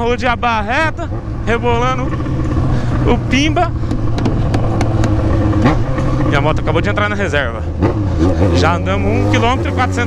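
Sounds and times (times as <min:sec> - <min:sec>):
motorcycle engine running: 0:00.0 - 0:10.0.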